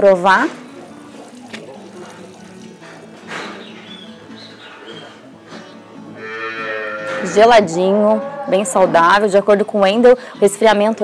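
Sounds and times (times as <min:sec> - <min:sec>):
soft background music: 0:00.0 - 0:11.0
cow mooing: 0:06.2 - 0:09.2.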